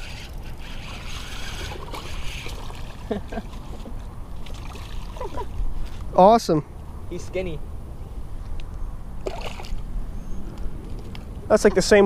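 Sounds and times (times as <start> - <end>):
fish splashing in water: 0.0 - 5.4, 9.2 - 9.8.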